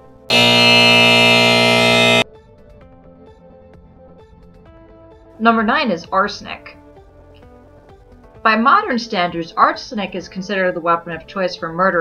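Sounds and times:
harsh wrong-answer buzzer: 0.0 - 2.2
soft background music: 5.4 - 12.0.

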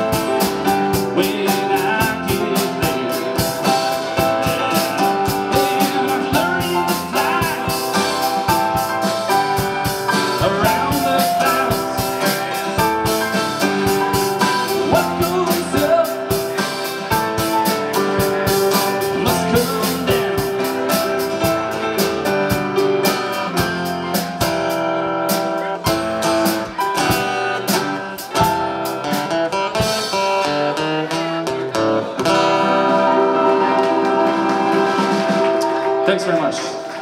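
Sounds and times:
acoustic guitar: 0.0 - 37.0
drum kit: 0.0 - 37.0
keyboard chords: 0.0 - 37.0.

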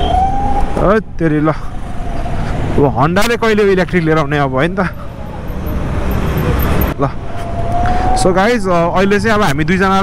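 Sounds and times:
road and traffic noise: 0.0 - 10.0.

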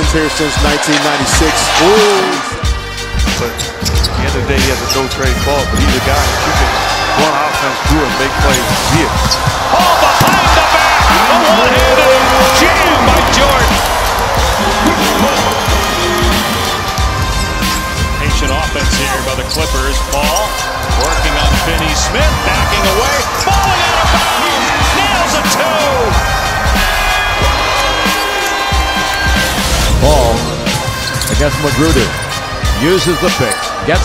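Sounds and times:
arena crowd noise: 0.0 - 34.0
background music: 0.0 - 34.0
sneaker squeaks: 3.3 - 4.2, 30.7 - 31.4.

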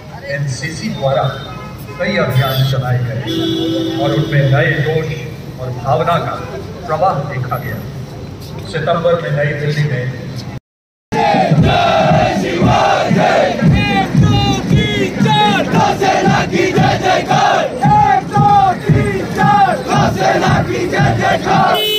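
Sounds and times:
large crowd shouting: 11.2 - 21.9.

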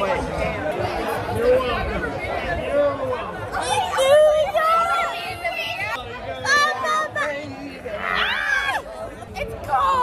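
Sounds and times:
general chatter: 0.0 - 10.0
young people talking and laughing: 0.0 - 10.0.

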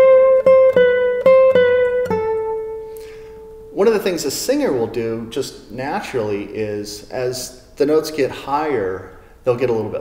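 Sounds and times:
classical guitar melody: 0.0 - 3.8.

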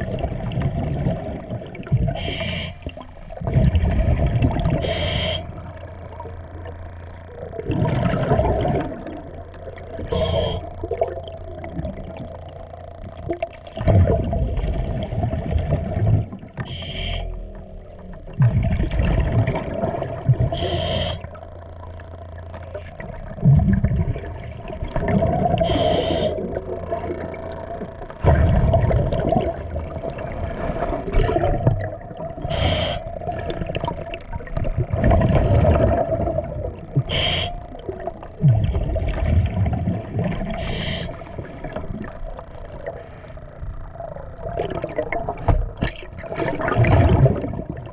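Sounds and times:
exhaled bubbles gushing: 0.0 - 47.9
steady hum: 0.0 - 47.9
regulator hissing inhalations: 2.2 - 2.8, 4.8 - 5.6, 10.1 - 10.7, 16.7 - 17.4, 20.6 - 21.3, 25.6 - 26.4, 32.4 - 33.1, 37.1 - 37.6, 40.6 - 41.3
regulator hiss: 2.2 - 2.9, 4.8 - 6.1, 9.8 - 11.0, 16.6 - 17.6, 20.4 - 23.4, 25.5 - 28.3, 32.4 - 33.6, 36.9 - 38.3, 40.5 - 41.8.

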